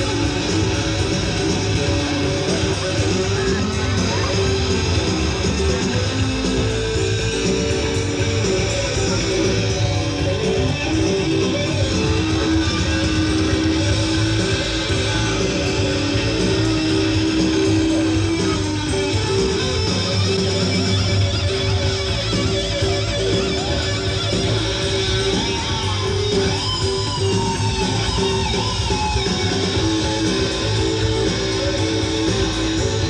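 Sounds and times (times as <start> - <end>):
electric guitar held notes: 0.0 - 33.0
live rock band playing: 0.0 - 33.0.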